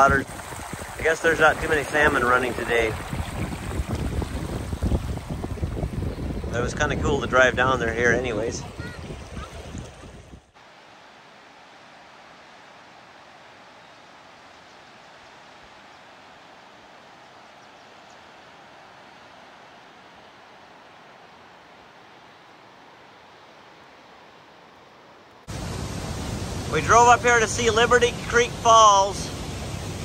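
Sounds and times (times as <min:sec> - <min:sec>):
distant creek rushing: 0:00.0 - 0:30.0.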